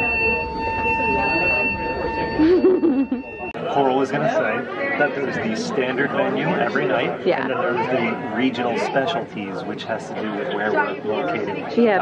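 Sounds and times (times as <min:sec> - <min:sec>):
ship alarm buzzing tone: 0:00.0 - 0:05.0
people talking: 0:01.0 - 0:12.0.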